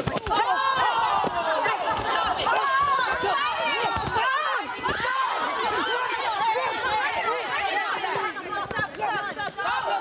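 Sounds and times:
people shouting and yelling: 0.0 - 10.0.

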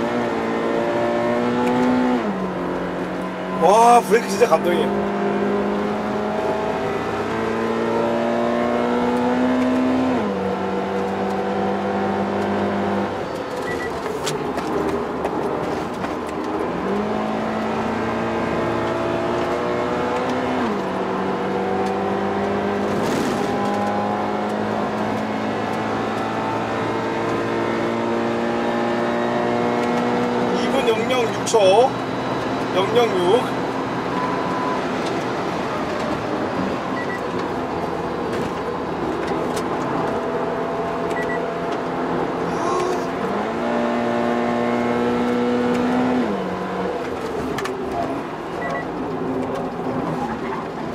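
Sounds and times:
car engine accelerating: 0.0 - 50.9.

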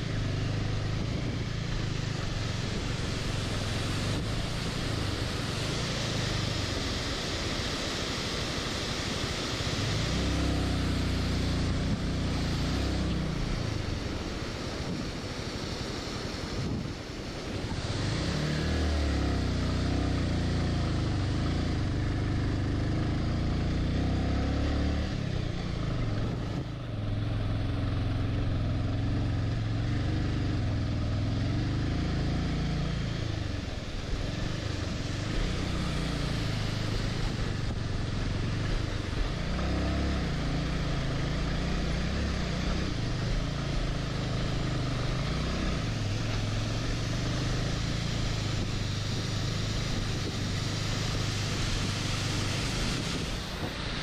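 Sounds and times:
motorcycle engine revving: 9.6 - 14.9, 17.4 - 54.0.

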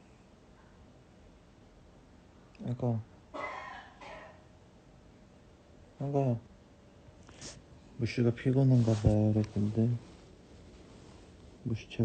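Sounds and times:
person coughing: 3.4 - 4.4.

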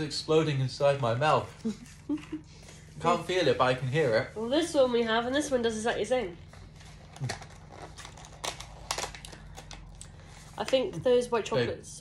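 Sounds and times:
popping candy crackling: 7.2 - 11.0.

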